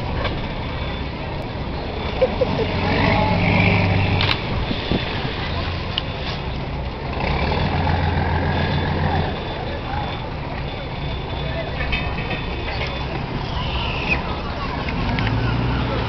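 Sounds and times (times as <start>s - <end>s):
large engine humming: 0.0s - 16.0s
murmur of voices: 0.8s - 16.0s.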